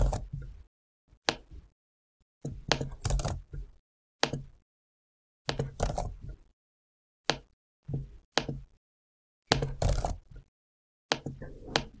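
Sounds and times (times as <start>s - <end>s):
keyboard and mouse clicks: 0.0s - 0.6s, 2.5s - 4.6s, 5.5s - 6.4s, 7.2s - 8.8s, 9.5s - 10.5s, 11.1s - 12.0s.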